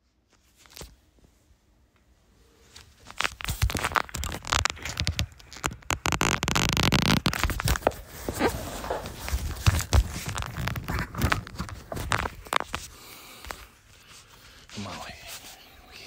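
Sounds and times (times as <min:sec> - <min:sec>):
rustling through insulation: 0:00.0 - 0:15.7.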